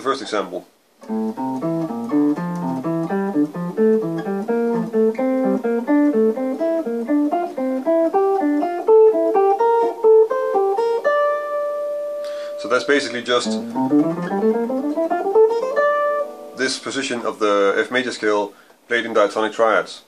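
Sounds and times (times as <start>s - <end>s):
electric guitar arpeggios: 1.0s - 16.7s.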